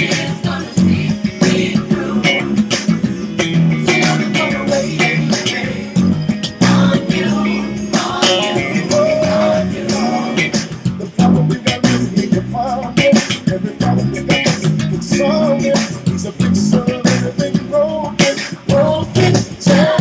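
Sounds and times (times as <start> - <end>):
drums: 0.0 - 20.0
electric bass played fingerstyle: 0.0 - 20.0
gospel singing: 0.0 - 20.0.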